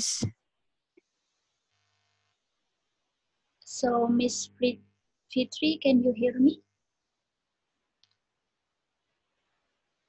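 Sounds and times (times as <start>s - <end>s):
faint click: 8.0s - 8.2s.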